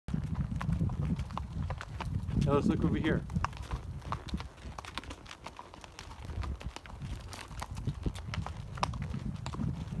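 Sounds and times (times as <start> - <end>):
horse hooves clopping on gravel: 0.1 - 10.0.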